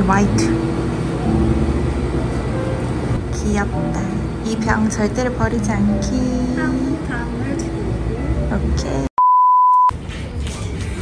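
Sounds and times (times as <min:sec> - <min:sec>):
electronic bleep tone: 0:09.2 - 0:09.9.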